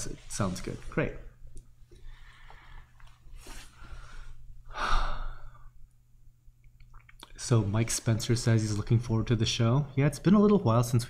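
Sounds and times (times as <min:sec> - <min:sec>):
man breathing out: 0:02.0 - 0:05.7.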